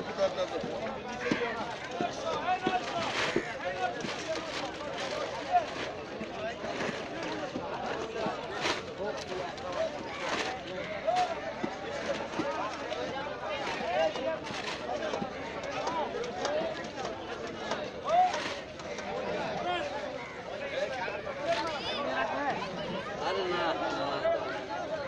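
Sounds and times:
chatter of people talking: 0.0 - 25.0.

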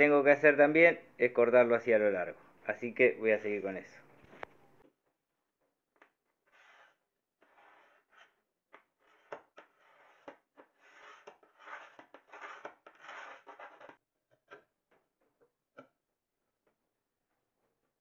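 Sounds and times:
glass cutter scoring glass: 6.5 - 14.0.

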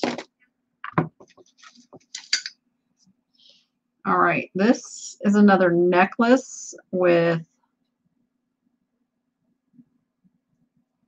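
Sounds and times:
soft rustle: 1.3 - 2.1.

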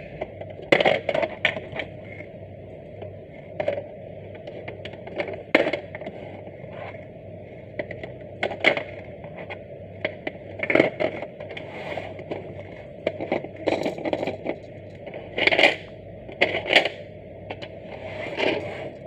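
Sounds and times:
plastic blocks clacking: 7.8 - 19.0.

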